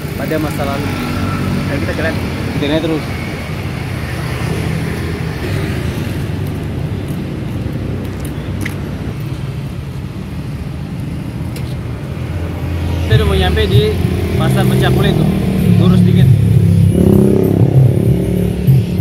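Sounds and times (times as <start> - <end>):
passing motorbikes and cars: 0.0 - 19.0.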